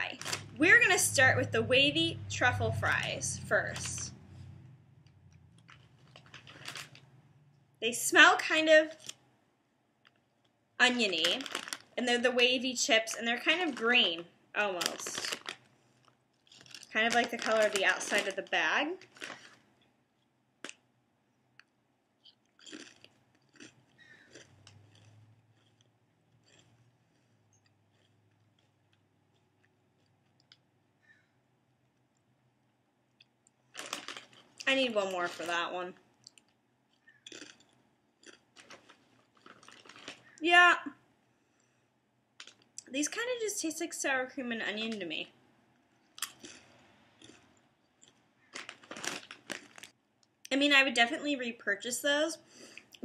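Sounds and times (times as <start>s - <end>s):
potato chip crunching: 5.3s - 7.1s, 10.9s - 12.0s, 14.6s - 19.6s, 22.2s - 30.7s, 33.2s - 40.4s, 42.4s - 42.9s, 46.1s - 50.0s.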